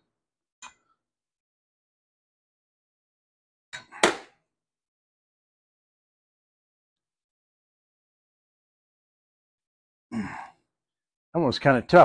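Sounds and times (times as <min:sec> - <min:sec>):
man grunting and sighing: 0:10.1 - 0:10.6.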